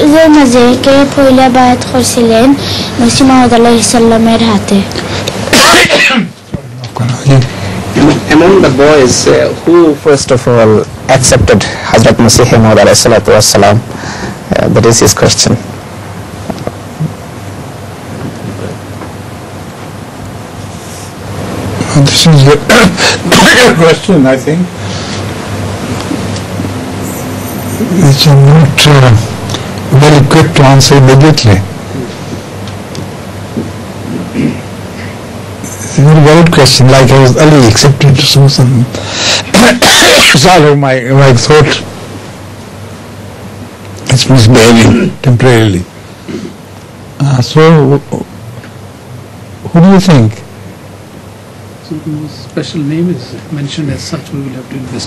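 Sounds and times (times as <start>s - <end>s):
faint low hum: 0.0s - 55.0s
steady hiss: 0.0s - 55.0s.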